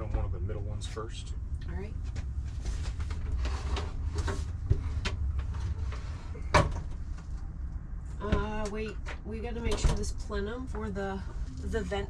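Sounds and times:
steady low hum: 0.0 - 12.0
knocks and scrapes of wooden cabinet: 2.8 - 7.2.

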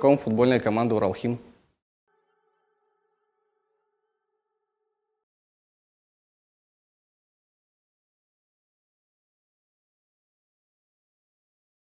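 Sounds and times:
faint drone of held tones: 2.1 - 5.3.

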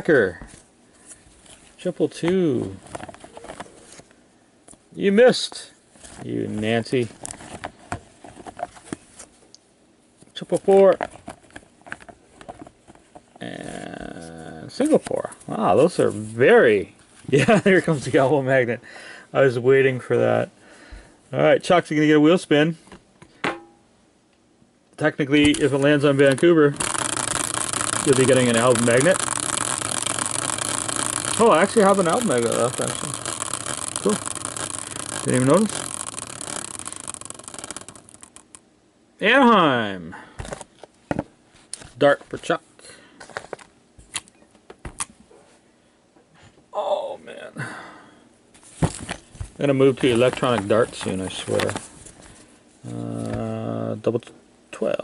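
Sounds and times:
cardboard cards shuffling: 2.6 - 4.1, 25.4 - 38.6, 48.6 - 52.4
spinning wheel ticking: 26.3 - 38.6.

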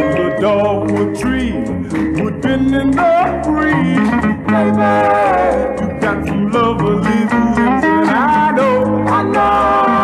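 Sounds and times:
bass: 0.0 - 10.0
guitar: 0.0 - 10.0
male group harmony singing: 2.5 - 10.0.

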